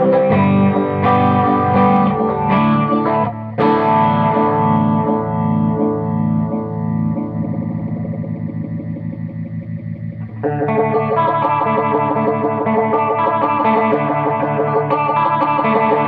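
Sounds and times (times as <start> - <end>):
electric guitar with phaser: 0.0 - 16.0.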